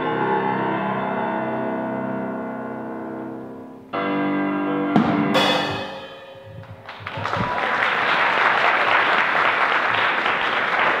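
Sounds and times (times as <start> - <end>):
piano and drums music: 3.8 - 7.6
drum kit hits: 4.9 - 6.9
cymbal crash ringing: 5.2 - 6.8
audience applauding: 6.6 - 11.0.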